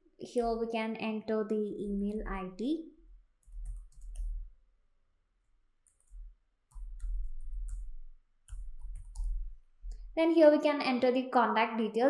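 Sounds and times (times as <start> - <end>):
typing on keyboard: 3.4 - 4.5, 5.8 - 10.0.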